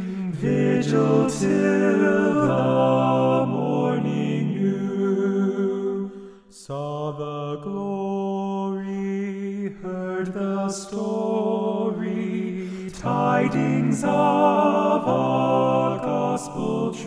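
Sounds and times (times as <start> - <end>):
a cappella carol harmony: 0.0 - 17.0.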